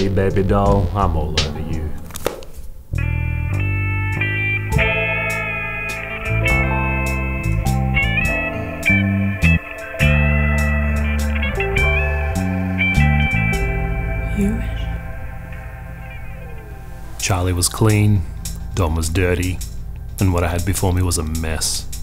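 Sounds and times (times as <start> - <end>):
film score music: 0.0 - 22.0.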